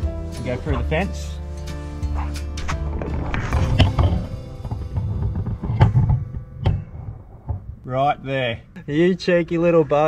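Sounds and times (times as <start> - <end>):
background music: 0.0 - 7.8
sharp knocks: 2.6 - 7.9.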